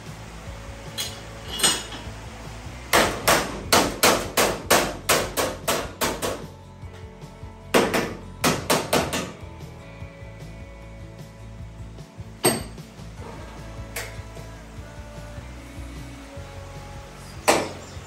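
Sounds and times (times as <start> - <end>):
hammer striking sheet steel: 2.9 - 6.5, 7.8 - 9.4, 12.4 - 12.8, 17.5 - 17.8.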